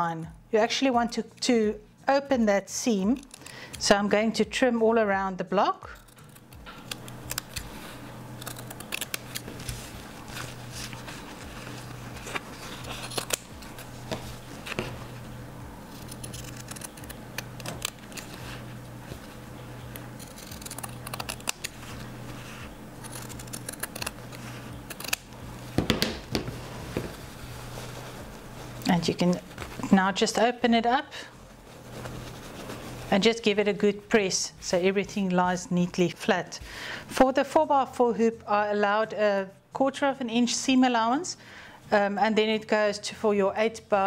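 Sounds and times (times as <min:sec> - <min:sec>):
low steady hum: 0:00.0 - 0:44.0
scissors snipping fabric: 0:05.9 - 0:07.8, 0:08.4 - 0:09.8, 0:15.9 - 0:18.4, 0:19.9 - 0:22.4, 0:23.0 - 0:25.4.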